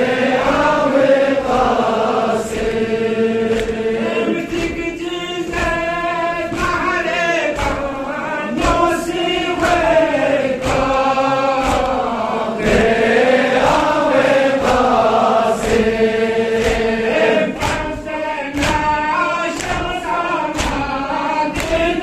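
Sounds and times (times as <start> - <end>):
men chanting together: 0.0 - 22.0
sharp rhythmic slaps: 0.0 - 22.0
man singing lament: 3.9 - 12.8, 17.4 - 22.0.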